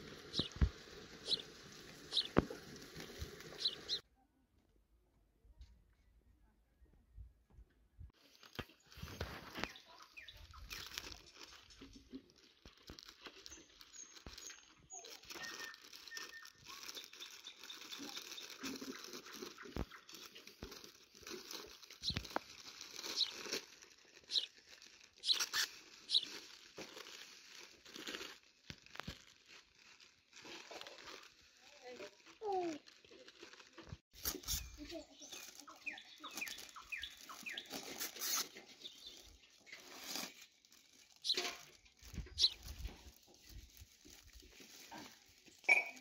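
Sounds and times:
plastic bags crinkling: 0.0 - 4.0, 8.2 - 46.0.

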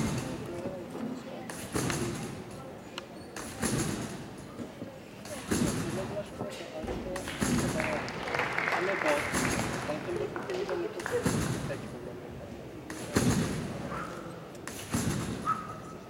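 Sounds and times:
trampoline thud with spring rattle: 0.0 - 0.4, 1.5 - 2.6, 3.4 - 4.4, 5.2 - 6.3, 7.1 - 7.9, 9.2 - 9.8, 11.0 - 11.8, 12.9 - 15.9
murmur of arena voices: 0.0 - 16.0.

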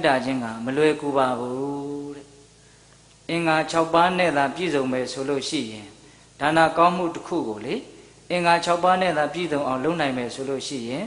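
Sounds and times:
person chanting into a microphone: 0.0 - 2.4.

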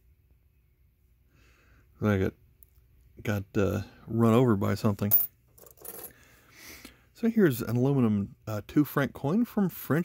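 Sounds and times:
coins clinking: 5.1 - 6.1.

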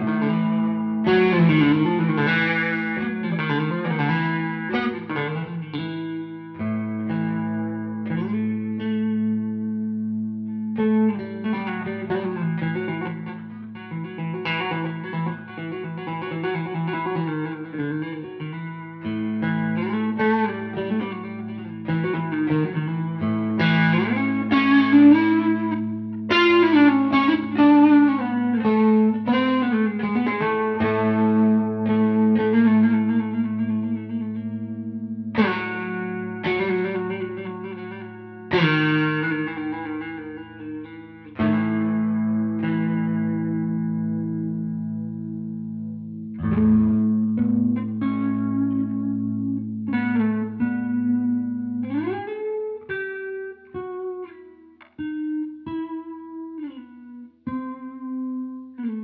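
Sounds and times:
electric guitar low drone: 0.0 - 59.0
electric guitar picked melody: 0.0 - 59.0.

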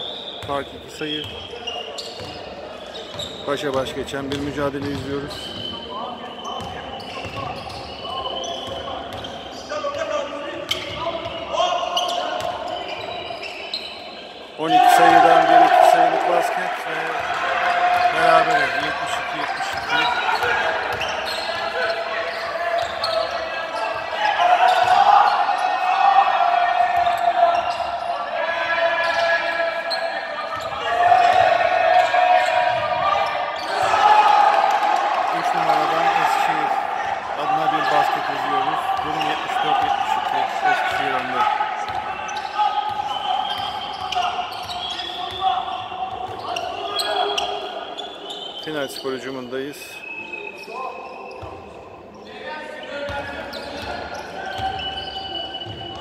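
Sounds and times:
voices shouting in a hall: 0.0 - 56.0.

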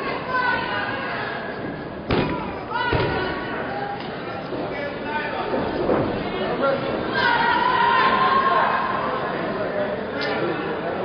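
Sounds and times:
crowd voices and shouts: 0.0 - 11.0.

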